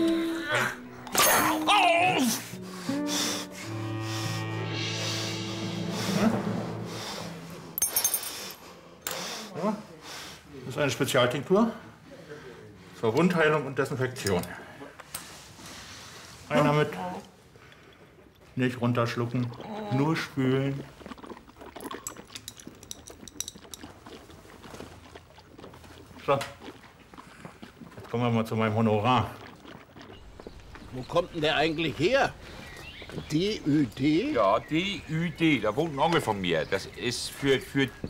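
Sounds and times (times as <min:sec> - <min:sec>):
liquid swished in mouth: 0:20.7 - 0:28.0.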